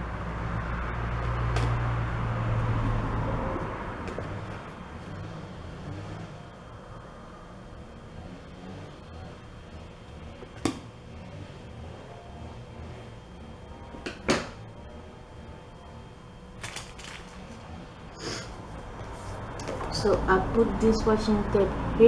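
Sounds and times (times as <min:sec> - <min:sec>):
low steady rumble: 0:00.0 - 0:22.0.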